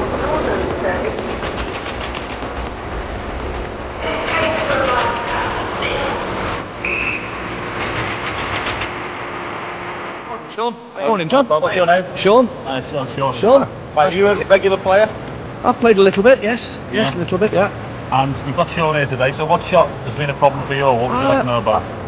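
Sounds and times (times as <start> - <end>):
wheels clicking over rails: 0.0 - 6.6, 7.6 - 9.0
train rumbling: 0.0 - 10.5
crowd voices: 21.0 - 21.5
short high tone: 21.1 - 21.5.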